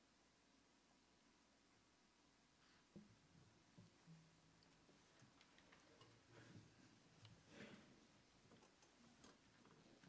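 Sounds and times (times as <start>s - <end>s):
soft rustle: 2.4s - 10.0s.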